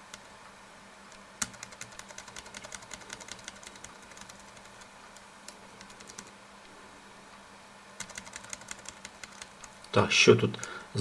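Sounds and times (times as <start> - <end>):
mouse scroll wheel clicking: 1.1 - 6.3, 8.0 - 9.7.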